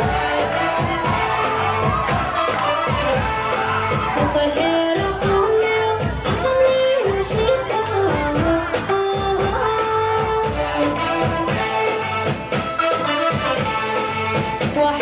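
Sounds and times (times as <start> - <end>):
amplified band music: 0.0 - 5.4, 6.0 - 15.0
woman singing into a microphone: 2.4 - 12.6, 13.6 - 15.0.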